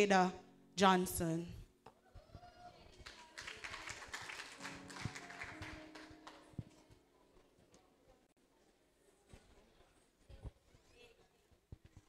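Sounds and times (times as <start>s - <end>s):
scattered claps: 3.0s - 6.7s.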